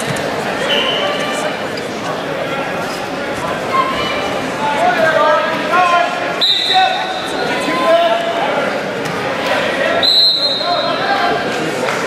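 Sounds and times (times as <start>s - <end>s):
coaches and spectators shouting: 0.0s - 1.9s, 2.5s - 12.0s.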